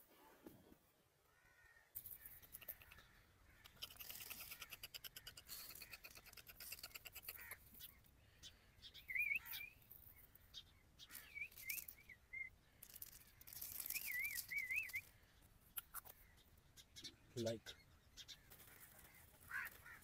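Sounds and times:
wavering whistled calls: 9.0s - 9.8s, 11.1s - 12.6s, 13.7s - 15.1s
seed rattling out of container: 11.2s - 12.0s, 12.8s - 15.1s
seeds rustling onto cardboard and soil: 12.8s - 15.1s.

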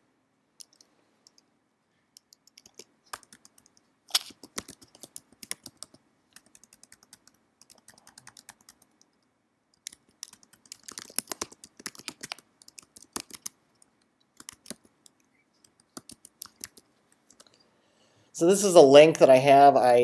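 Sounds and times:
typing on computer keyboard: 2.2s - 9.2s, 9.8s - 17.5s.

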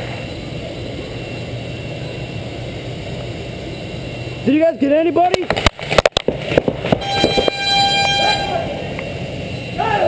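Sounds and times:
long horn blast: 7.0s - 8.9s
voices: 7.0s - 10.0s.

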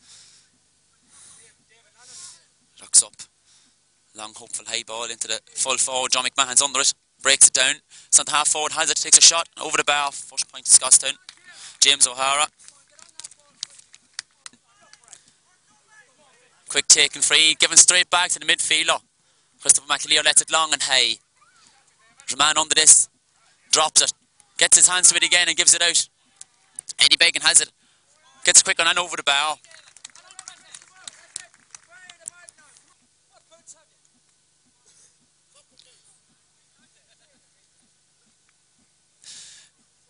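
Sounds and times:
distant shouts and calls: 5.4s - 34.1s.

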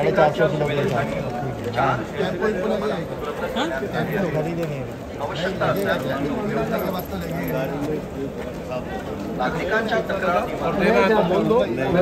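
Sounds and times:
men talking over one another: 0.0s - 12.0s.

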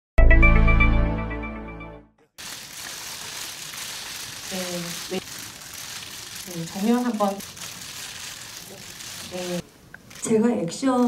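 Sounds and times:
room noise hiss: 2.4s - 11.0s.

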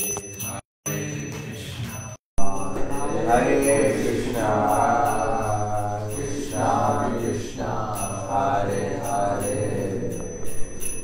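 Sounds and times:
man chanting: 0.9s - 10.1s.

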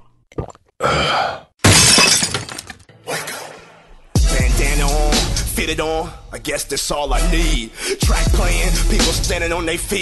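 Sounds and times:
glass shattering: 1.6s - 2.9s
dance music: 4.2s - 5.8s.

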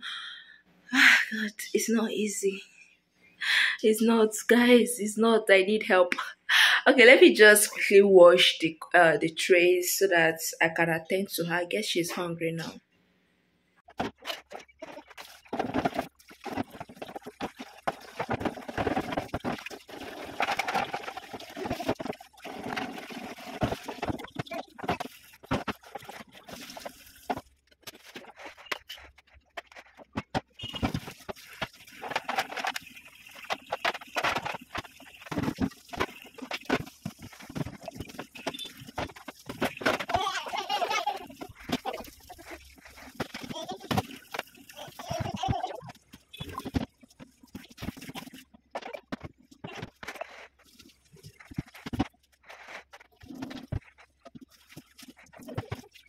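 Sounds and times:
plastic and glass clattering: 13.8s - 56.0s.

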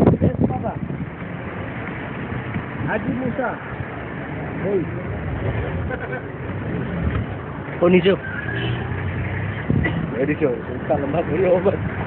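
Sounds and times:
vehicle engine rumbling: 0.0s - 12.0s
men talking: 0.1s - 0.9s, 2.7s - 8.4s, 9.7s - 12.0s.

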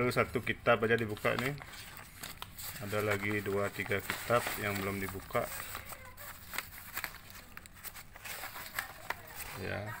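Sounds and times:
paper crinkling: 0.1s - 10.0s
paper sheets rustling: 0.1s - 10.0s.

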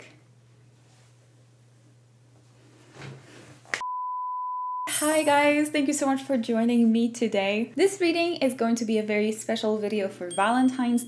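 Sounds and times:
electronic beep: 10.3s - 11.0s.

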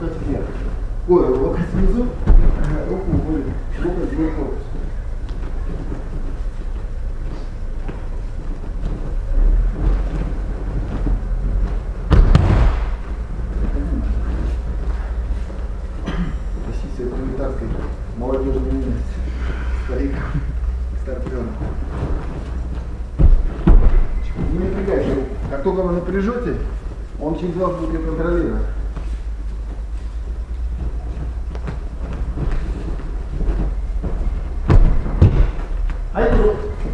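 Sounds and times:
steady low rumble: 0.0s - 36.9s
body thudding on mat: 1.8s - 3.6s, 5.4s - 15.3s, 21.3s - 25.8s, 30.6s - 36.9s.

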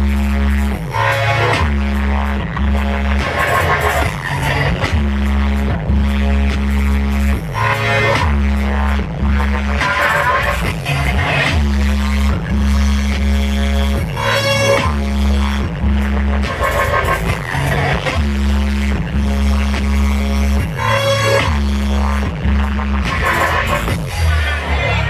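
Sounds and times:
dubstep with heavy sub-bass: 0.0s - 25.0s.

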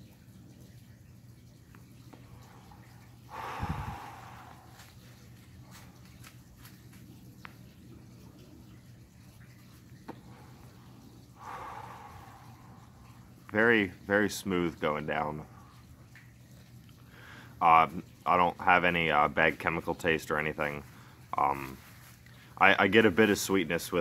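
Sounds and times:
faint background hum: 0.0s - 24.0s
breath puff on microphone: 3.3s - 4.8s
person exhaling smoke: 3.3s - 5.0s, 11.4s - 13.2s.

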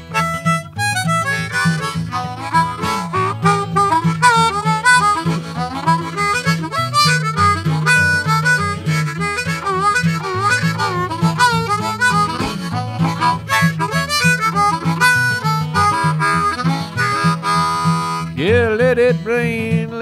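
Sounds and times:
harmonica playing: 0.0s - 19.4s
strummed acoustic guitar: 0.0s - 20.0s.

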